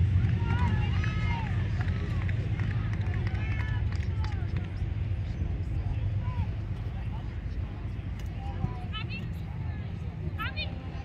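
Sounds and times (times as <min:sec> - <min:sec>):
players and spectators shouting: 0:00.0 - 0:04.6
steady low rumble: 0:00.0 - 0:11.0.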